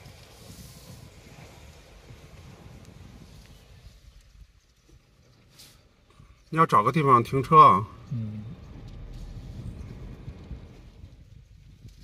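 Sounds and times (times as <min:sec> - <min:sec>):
car rolling rumble from inside: 0:00.0 - 0:12.0.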